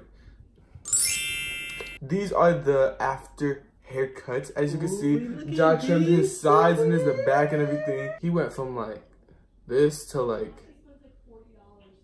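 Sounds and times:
bright chime sparkle effect: 0.9 - 2.0.

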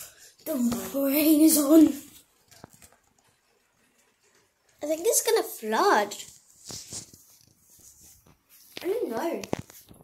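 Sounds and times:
faint rain patter on a roof: 0.0 - 10.0.

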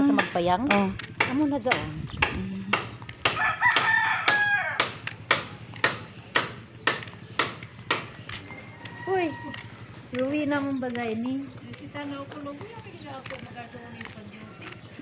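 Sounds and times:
footsteps on concrete: 0.0 - 15.0
rooster crowing: 3.3 - 5.0, 8.4 - 9.8.

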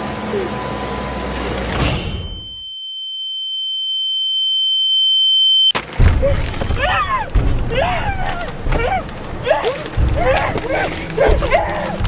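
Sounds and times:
high-pitched ringing tone: 2.2 - 5.7.

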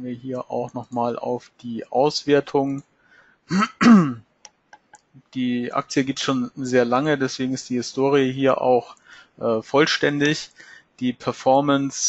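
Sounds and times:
man clearing throat: 3.5 - 4.2.

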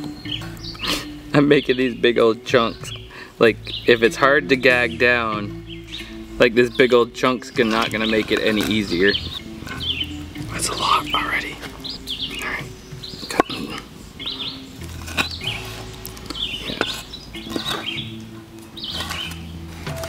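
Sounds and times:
background music with low notes: 0.0 - 20.0
birds chirping: 0.0 - 20.0.

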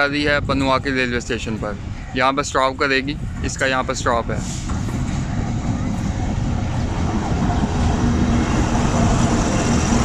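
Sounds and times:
diesel locomotive running past: 0.0 - 10.0
train coaches rolling over rails: 2.6 - 10.0.

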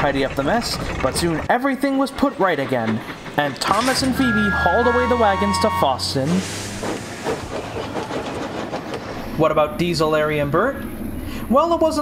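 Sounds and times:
wagon wheels rolling on track: 0.0 - 10.8
steam hissing: 0.5 - 9.7.

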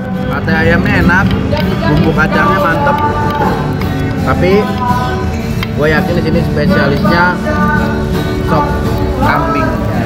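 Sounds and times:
background music: 0.0 - 10.0
man talking: 0.3 - 3.6, 4.2 - 4.8, 5.7 - 7.5.

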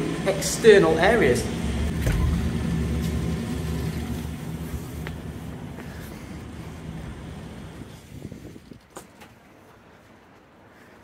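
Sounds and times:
wind rumbling on microphone: 3.9 - 9.0.

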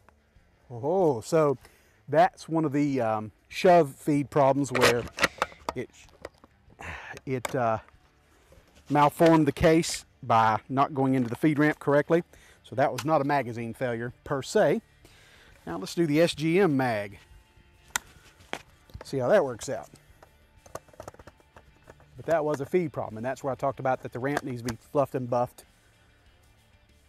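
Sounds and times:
shotgun metal clicks and clacks: 4.6 - 6.5, 19.0 - 25.0.

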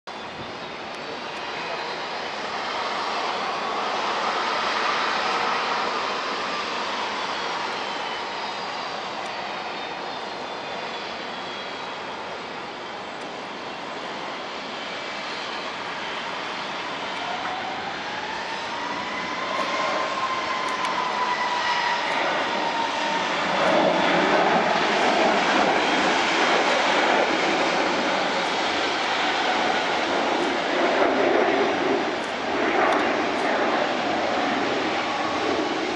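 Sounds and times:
jet engines whining at takeoff: 0.1 - 35.9.

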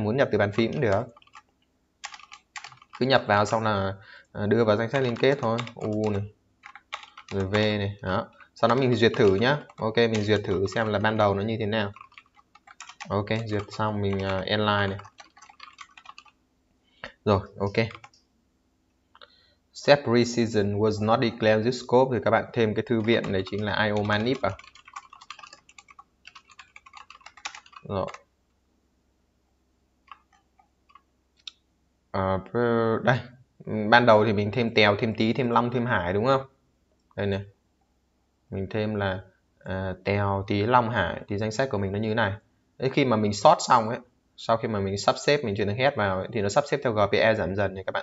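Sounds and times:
computer keyboard keystrokes: 0.6 - 3.1, 4.9 - 7.7, 8.3 - 11.0, 11.9 - 16.4, 17.8 - 18.2, 22.9 - 28.2, 30.1 - 31.1.

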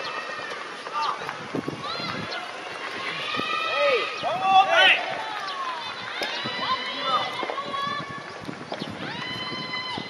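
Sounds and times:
spectators calling out and chattering: 0.0 - 10.0.

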